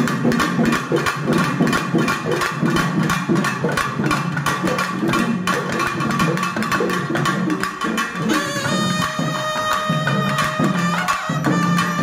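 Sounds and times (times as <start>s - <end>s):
fast drum strokes: 0.0s - 12.0s.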